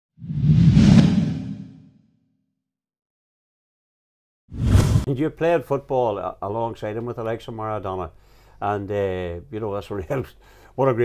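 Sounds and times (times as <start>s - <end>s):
whoosh: 0.2s - 1.9s, 4.5s - 5.1s.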